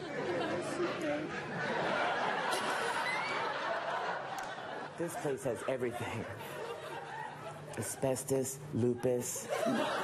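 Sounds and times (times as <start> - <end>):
audience laughter and murmur: 0.0 - 10.0.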